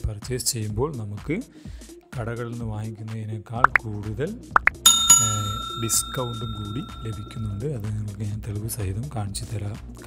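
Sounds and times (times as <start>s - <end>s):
bell chime: 4.8s - 7.8s.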